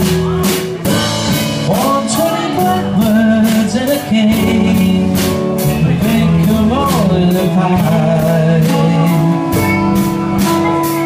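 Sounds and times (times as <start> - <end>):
soft rock band playing: 0.0 - 11.0.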